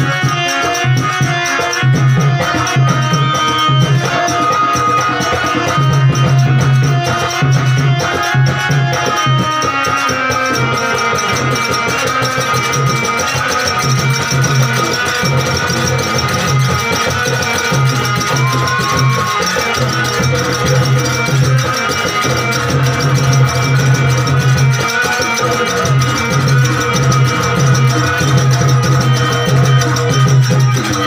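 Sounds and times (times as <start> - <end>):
fast percussion rhythm: 0.0 - 31.0
harmonium holding notes: 0.0 - 31.0.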